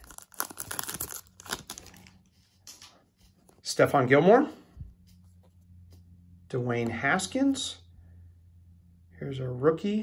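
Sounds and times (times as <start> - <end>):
foil wrapper tearing and crinkling: 0.0 - 2.2.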